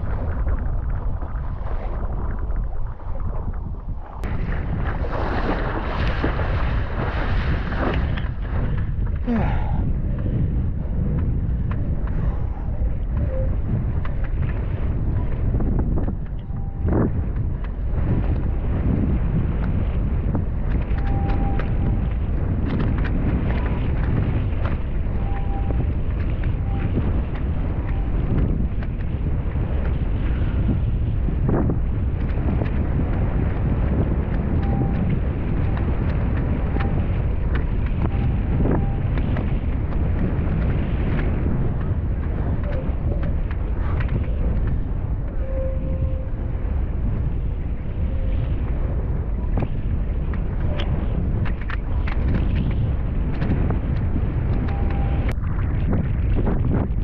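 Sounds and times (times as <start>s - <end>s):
water noise: 0.0s - 57.0s
wind buffeting microphone: 0.0s - 57.0s
sharp knocks or splashes: 4.2s - 8.9s.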